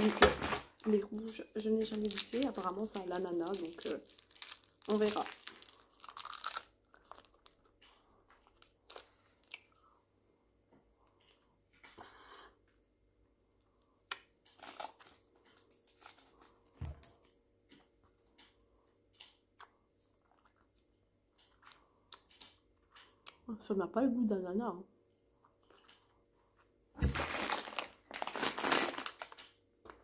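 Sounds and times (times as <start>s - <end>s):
hard candy crunching in mouth: 1.8s - 9.8s, 27.1s - 30.0s.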